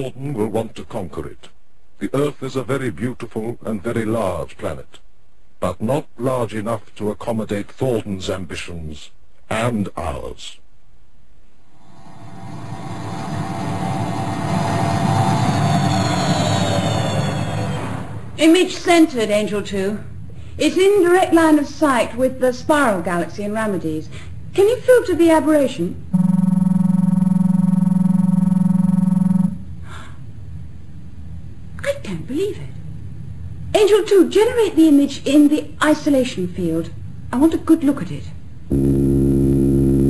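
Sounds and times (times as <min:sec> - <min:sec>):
buzzing synthesized tone: 0:26.1 - 0:29.7, 0:38.7 - 0:40.0
low rumbling hum: 0:26.1 - 0:31.7.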